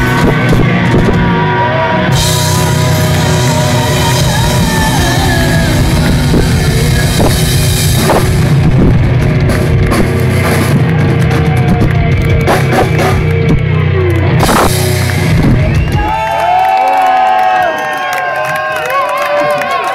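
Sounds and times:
distorted electric guitars: 0.0s - 16.8s
drum kit: 0.0s - 17.7s
crowd cheering: 0.0s - 19.9s.

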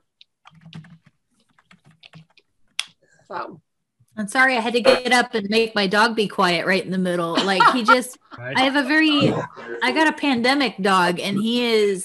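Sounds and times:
computer keyboard key clicks: 0.4s - 2.9s.

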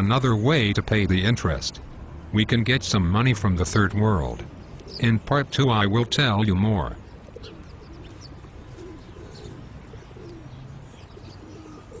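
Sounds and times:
small birds chirping: 0.0s - 12.0s
steady background hiss: 0.0s - 12.0s
dove cooing: 4.6s - 5.0s, 6.1s - 12.0s.

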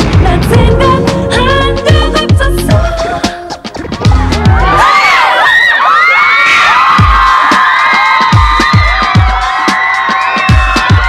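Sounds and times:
kick drum beat: 0.0s - 4.8s, 6.9s - 11.0s
crowd screaming and cheering: 3.8s - 11.0s.

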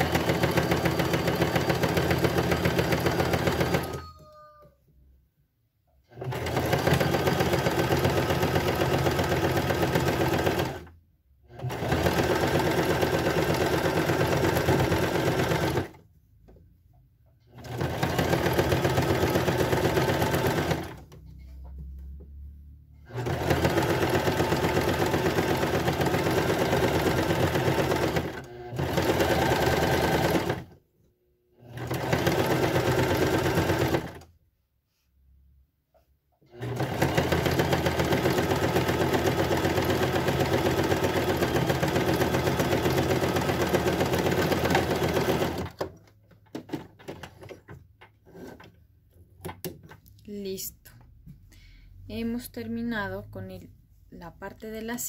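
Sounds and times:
electric sewing machine running: 0.0s - 4.0s, 6.1s - 10.9s, 11.5s - 16.0s, 17.6s - 21.1s, 23.0s - 30.7s, 31.6s - 34.2s, 36.5s - 45.9s.

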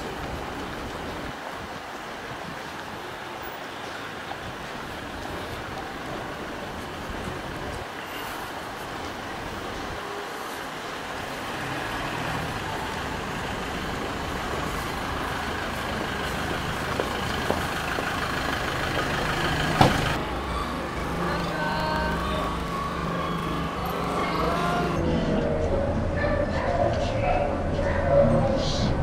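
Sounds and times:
running vehicle noise: 0.0s - 29.0s
faint pitched tones: 20.2s - 27.5s.

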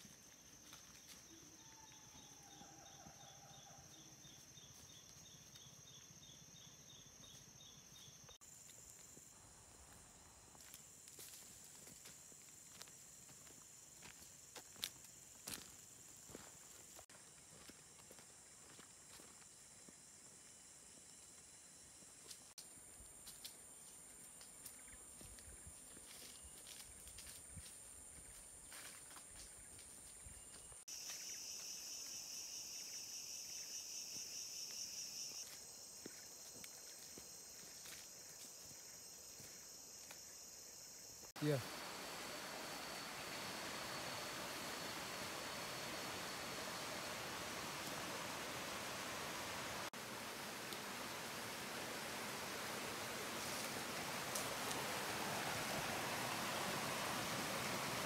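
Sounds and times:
forest insects droning: 0.0s - 58.0s
footsteps on dirt and leaves: 8.4s - 19.5s, 22.3s - 31.6s, 35.3s - 40.3s.

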